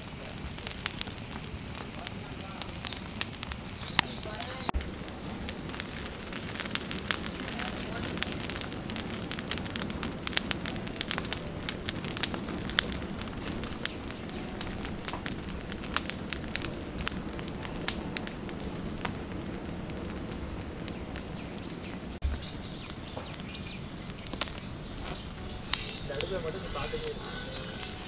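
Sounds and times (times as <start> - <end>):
fire crackling and popping: 0.0 - 28.0.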